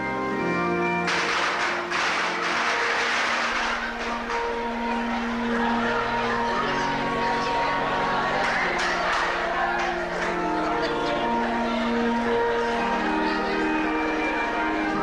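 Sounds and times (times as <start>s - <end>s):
organ playing held chords: 0.0s - 15.0s.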